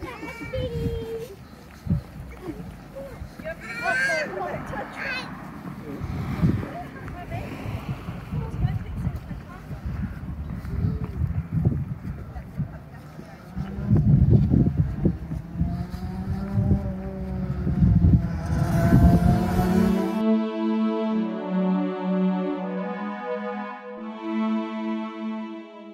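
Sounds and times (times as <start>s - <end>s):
wind buffeting microphone: 0.0s - 20.2s
soft music: 19.4s - 25.9s.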